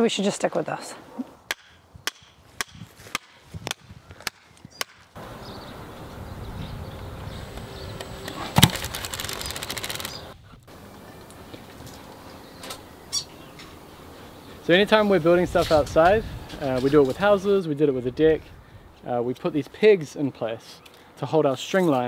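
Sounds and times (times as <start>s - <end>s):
wind on microphone: 1.9s - 4.8s, 5.4s - 9.3s, 15.2s - 17.4s.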